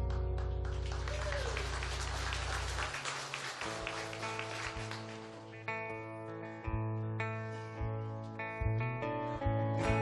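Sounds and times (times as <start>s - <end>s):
congregation applauding: 0.0s - 5.6s.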